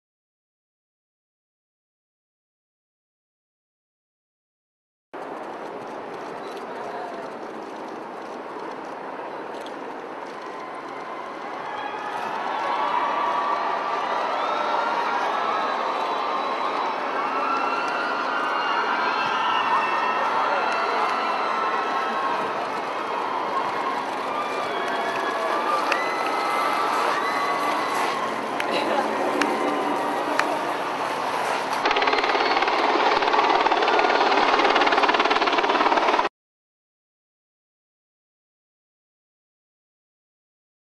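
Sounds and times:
large crowd cheering: 5.2 - 36.3
high shouts and whoops: 10.3 - 32.7.

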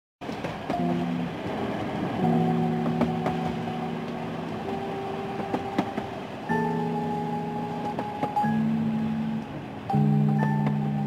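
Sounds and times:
train carriage rumbling: 0.2 - 11.0
held chords of background music: 0.6 - 11.0.

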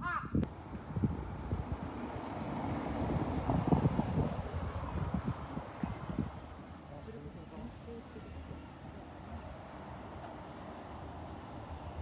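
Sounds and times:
wind on microphone: 0.0 - 6.6.

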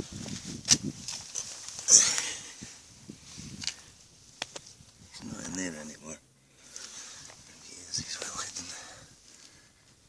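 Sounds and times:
rustling of leafy plants: 0.0 - 5.9, 6.5 - 10.0.

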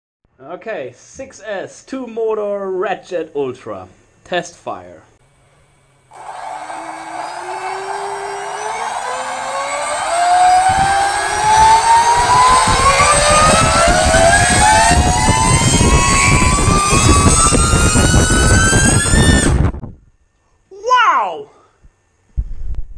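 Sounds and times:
electric motors whining: 6.1 - 19.7
rushing noise: 6.1 - 19.7.

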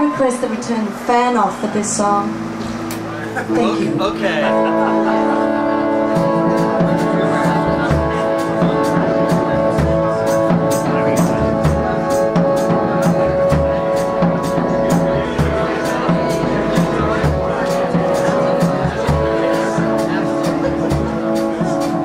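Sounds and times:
live band playing slow song: 0.0 - 22.0
low drum beat: 6.1 - 22.0.

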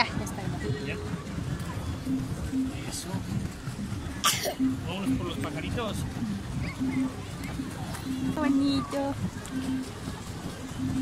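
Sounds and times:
water churning under boat hull: 0.0 - 11.0.

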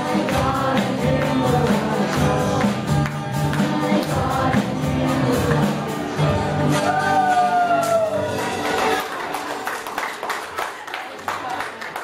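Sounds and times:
singers performing gospel song: 0.0 - 8.2
acoustic and electric guitars: 0.0 - 9.0.

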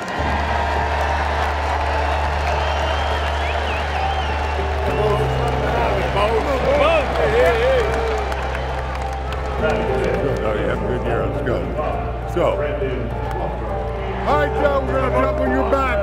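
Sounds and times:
stadium crowd noise: 0.0 - 16.0.

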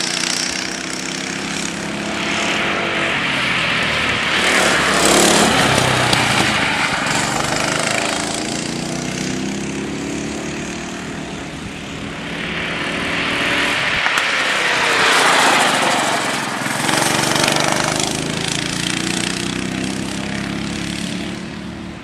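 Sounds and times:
kart engines running: 0.0 - 22.0
kart passing by: 0.0 - 22.0.

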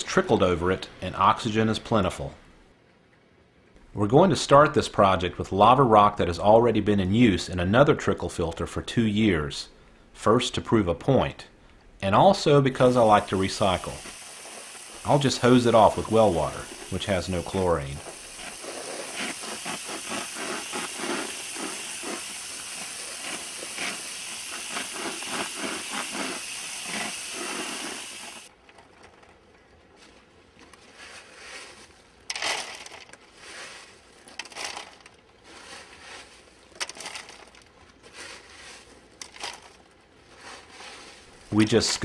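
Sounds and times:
hose nozzle spraying water: 12.6 - 28.5
water spattering off rocks: 12.8 - 28.5.

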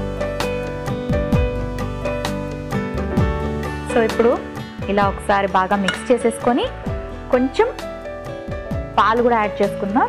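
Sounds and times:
background music: 0.0 - 10.0
woman speaking: 3.9 - 6.7.

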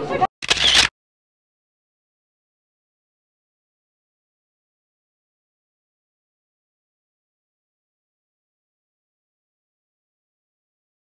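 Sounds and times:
camera shutter click: 0.4 - 0.9.

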